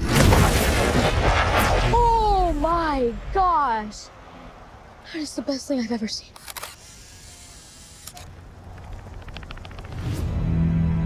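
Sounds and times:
rapid mechanical clicks: 6.4s - 10.2s.

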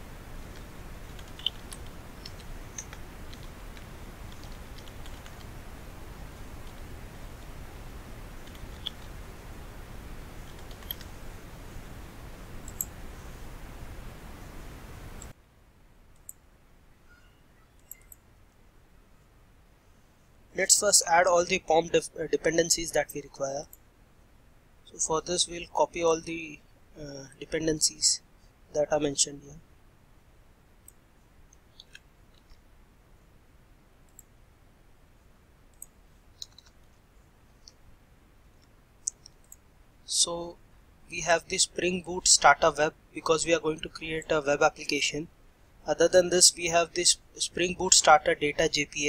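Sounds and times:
faint steady hiss: 0.0s - 49.0s
computer mouse clicks: 0.4s - 5.5s, 6.4s - 7.5s, 8.4s - 9.2s, 10.4s - 11.2s, 12.6s - 13.0s, 17.8s - 18.2s, 35.7s - 37.0s.

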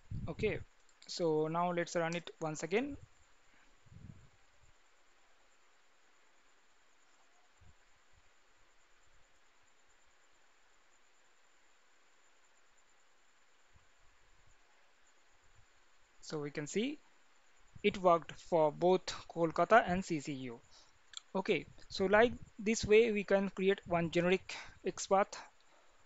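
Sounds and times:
soft low thumps: 0.0s - 0.7s, 3.8s - 4.4s
faint room tone hiss: 0.0s - 26.0s.

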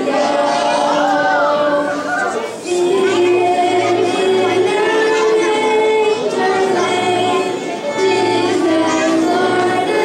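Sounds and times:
keyboard: 0.0s - 10.0s
young voices singing: 0.0s - 10.0s.

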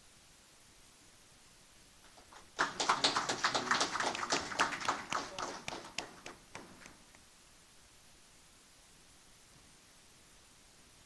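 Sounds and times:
audience applauding: 2.1s - 7.2s.

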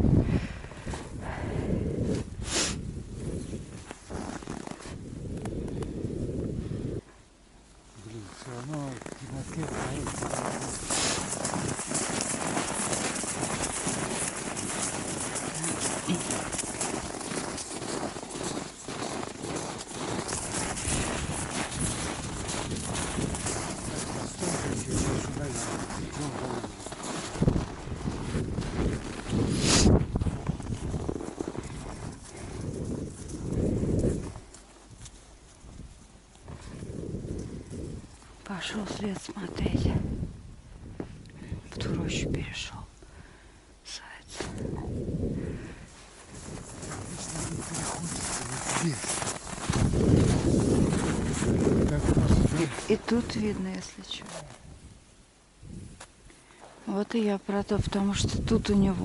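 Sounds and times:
footsteps crunching in snow: 3.4s - 5.0s, 8.0s - 38.4s, 45.9s - 54.8s.

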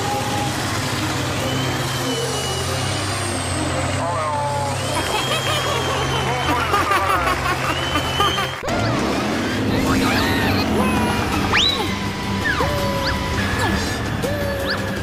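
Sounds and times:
people's voices: 0.0s - 15.0s
truck churning through mud: 0.0s - 15.0s
truck diesel engine under load: 0.0s - 15.0s.

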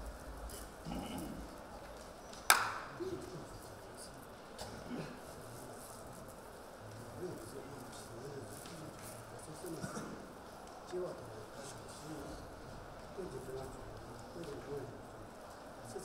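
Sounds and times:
faint low murmuring voices: 0.0s - 16.0s
sharp handclap: 2.4s - 3.0s.

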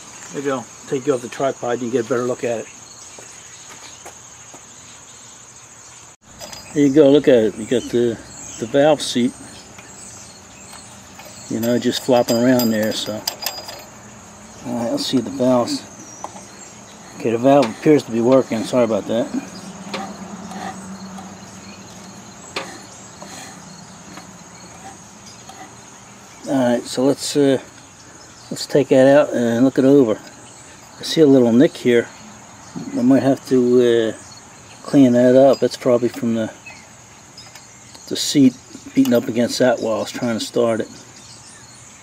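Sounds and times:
insects chirring: 0.0s - 42.0s.

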